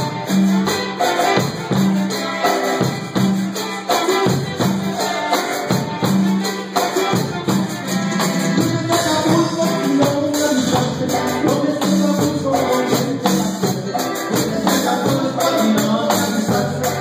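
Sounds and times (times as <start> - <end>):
high hand percussion beat: 0.0 - 17.0
live band playing dance music: 0.0 - 17.0.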